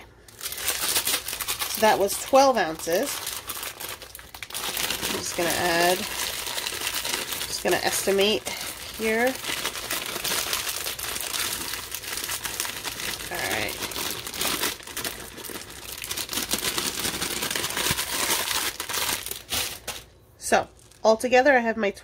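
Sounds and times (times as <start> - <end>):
plastic bag crinkling: 0.0 - 20.1, 20.7 - 21.1.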